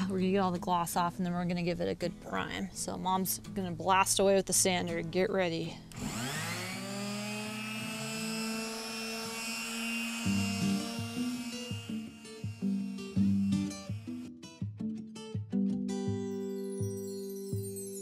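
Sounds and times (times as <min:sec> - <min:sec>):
finishing sander on wood: 0:05.9 - 0:14.3
plucked acoustic guitar music: 0:10.6 - 0:16.5.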